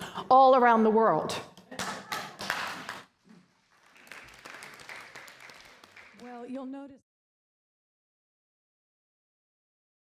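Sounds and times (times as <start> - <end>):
faint audience applause: 1.8 - 6.5.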